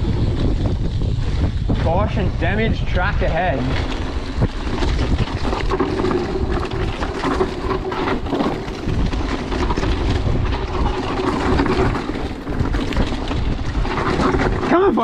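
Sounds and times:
bike rattling over bumps: 0:00.0 - 0:15.0
tyres rolling on dirt: 0:00.0 - 0:15.0
wind rushing over microphone: 0:00.0 - 0:15.0.

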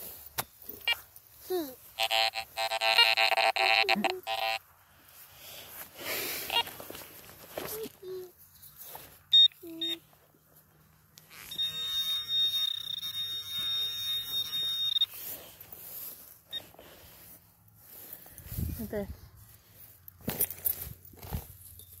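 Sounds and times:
short high beeps: 0:02.0 - 0:04.6, 0:09.3 - 0:10.1, 0:11.3 - 0:15.3
steady high tone: 0:11.4 - 0:16.2.

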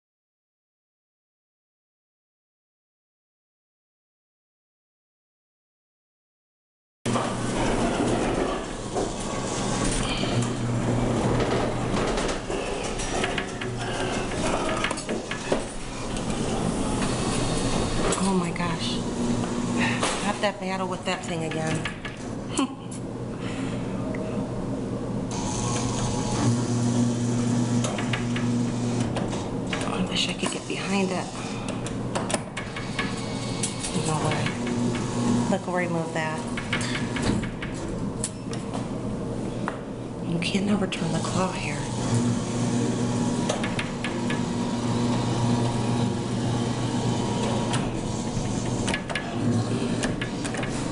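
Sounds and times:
claw machine mechanical hum: 0:07.1 - 0:50.9.

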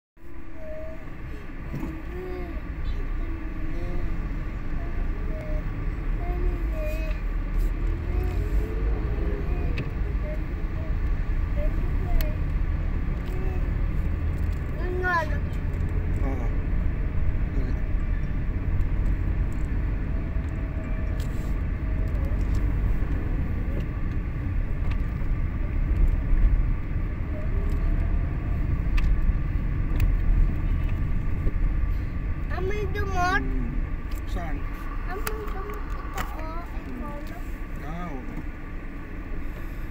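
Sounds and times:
car engine and tyres rumbling: 0:00.2 - 0:39.9.

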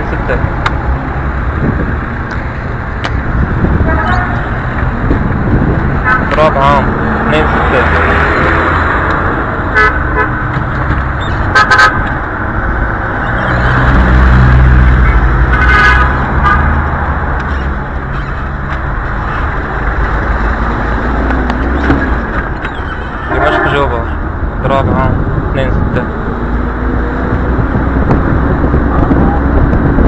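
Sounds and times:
passing car engines: 0:00.0 - 0:30.0
short car horn toots: 0:03.9 - 0:04.5.

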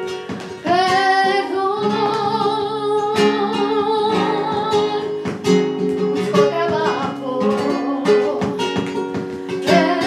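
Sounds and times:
acoustic guitar plucked and strummed: 0:00.0 - 0:10.0.

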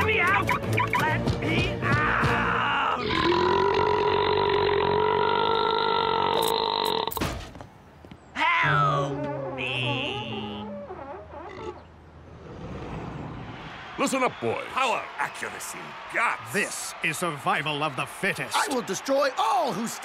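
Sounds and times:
man yelling: 0:01.6 - 0:03.0, 0:18.5 - 0:20.0
long cartoon burp: 0:03.0 - 0:07.2.

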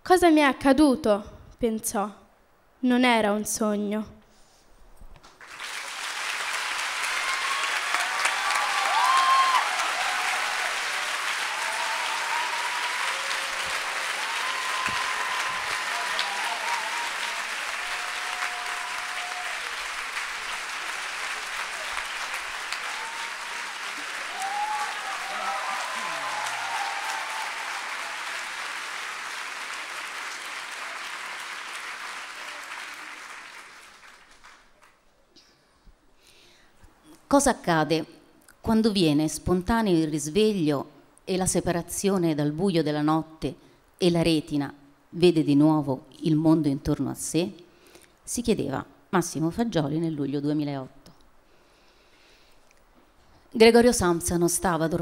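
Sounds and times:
audience applauding: 0:05.4 - 0:35.0.

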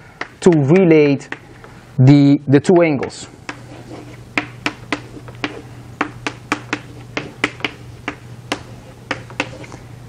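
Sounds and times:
chalk tapping on chalkboard: 0:00.2 - 0:01.7, 0:03.0 - 0:09.8.

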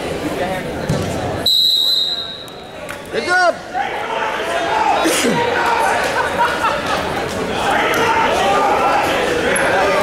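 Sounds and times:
referee's whistle blast: 0:01.4 - 0:02.6.

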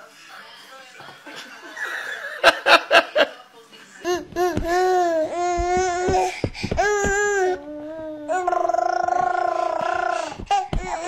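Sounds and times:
toddler vocalising: 0:04.0 - 0:11.0.

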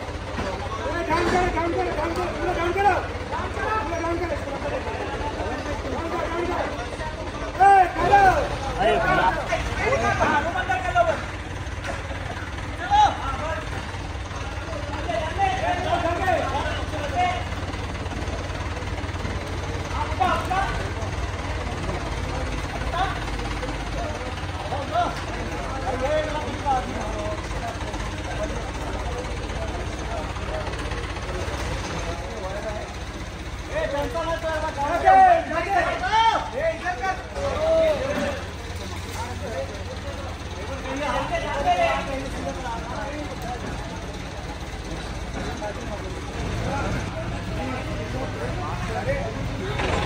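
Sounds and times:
crane engine rumbling: 0:00.0 - 0:50.0
men shouting: 0:07.5 - 0:11.3, 0:33.8 - 0:38.5.

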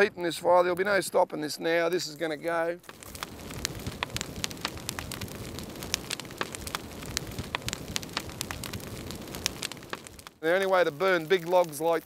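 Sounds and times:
bonfire crackling and popping: 0:00.0 - 0:12.0
fire low rush: 0:02.8 - 0:12.0.

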